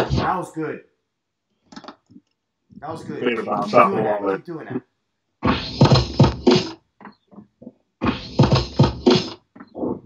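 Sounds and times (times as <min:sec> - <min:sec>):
drum beat from vinyl record: 0:00.0 - 0:00.3, 0:05.4 - 0:06.8, 0:08.0 - 0:10.0.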